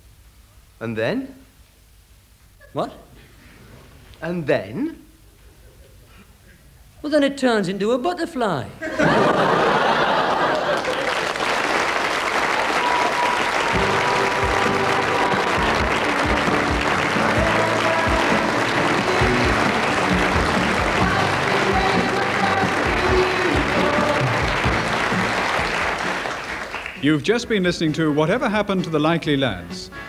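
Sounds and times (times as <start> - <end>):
audience applauding: 9.0 - 27.2
theme music with steady beat: 13.6 - 26.7.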